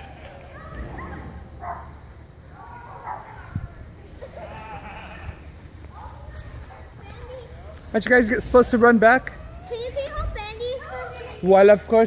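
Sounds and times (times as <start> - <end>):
wind rumble on microphone: 3.0 - 6.8.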